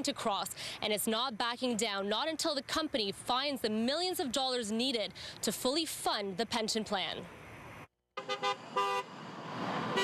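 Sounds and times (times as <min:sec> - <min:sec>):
car passing: 0:07.2 - 0:10.0
car horns honking: 0:08.2 - 0:09.2.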